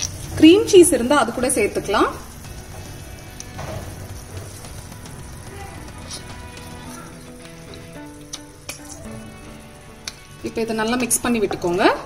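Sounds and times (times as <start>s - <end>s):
gentle background music: 0.0s - 12.0s
mushrooms sizzling in a pan: 0.0s - 12.0s.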